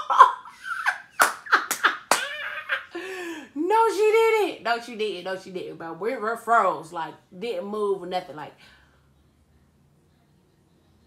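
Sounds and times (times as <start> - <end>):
sharp slaps: 1.2 - 2.4.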